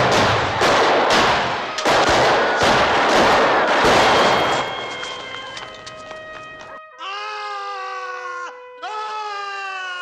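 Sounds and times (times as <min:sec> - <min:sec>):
man screaming: 0:07.0 - 0:10.0.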